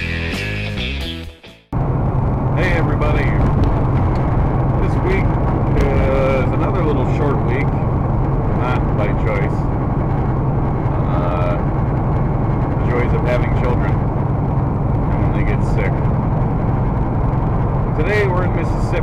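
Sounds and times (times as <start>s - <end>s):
truck engine drone: 0.0s - 19.0s
road noise: 1.7s - 19.0s
man speaking: 2.6s - 3.5s, 4.8s - 7.8s, 8.6s - 9.6s, 11.0s - 11.7s, 12.8s - 14.0s, 15.1s - 16.1s, 17.9s - 19.0s.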